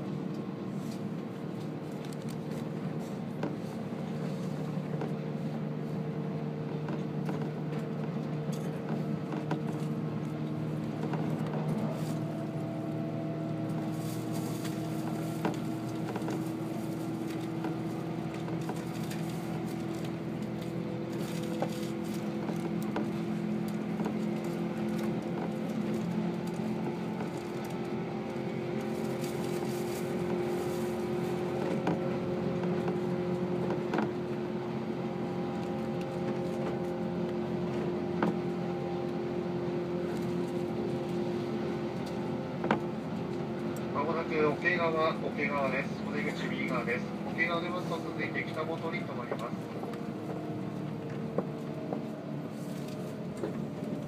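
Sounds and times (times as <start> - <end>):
electric train running hum: 0.0 - 54.0.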